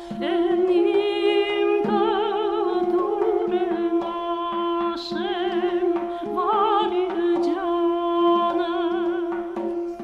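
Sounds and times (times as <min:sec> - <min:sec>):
ornamented duduk melody: 0:00.0 - 0:10.0.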